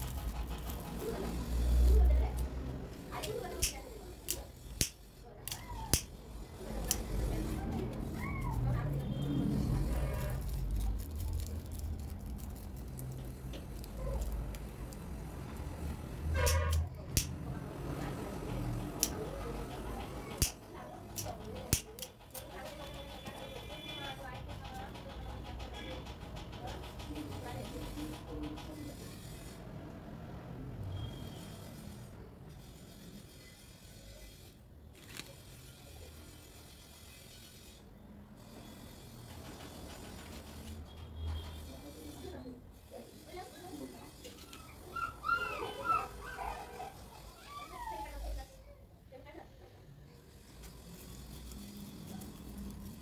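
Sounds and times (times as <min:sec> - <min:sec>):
dog whimpering: 0:44.4 - 0:48.5.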